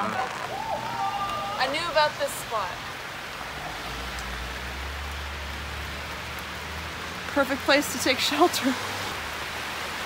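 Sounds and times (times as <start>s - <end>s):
rain falling on leaves: 0.0s - 10.0s.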